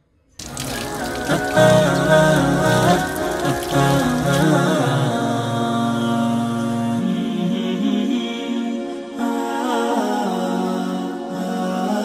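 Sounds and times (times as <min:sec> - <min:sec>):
water pouring from tap: 0:00.4 - 0:04.7
water splashing into basin: 0:00.4 - 0:04.8
chanted vocal music with drone: 0:00.4 - 0:12.0.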